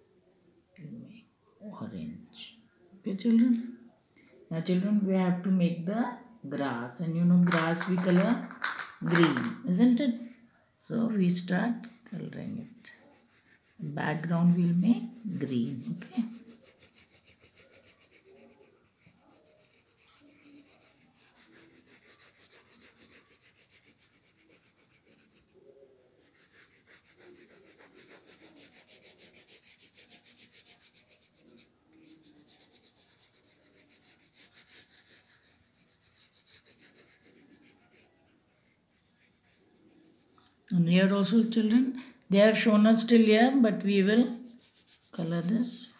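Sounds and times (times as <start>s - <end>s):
pencil scratching on paper: 7.4s - 9.5s, 11.4s - 40.3s, 44.4s - 45.9s.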